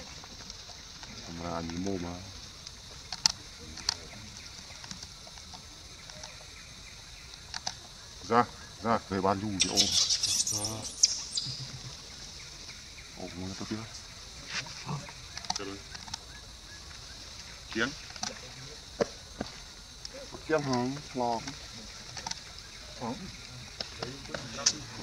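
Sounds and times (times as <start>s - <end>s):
sharp crackles and clicks: 0.0s - 8.0s, 14.9s - 22.8s
steady high-pitched hiss: 0.0s - 25.0s.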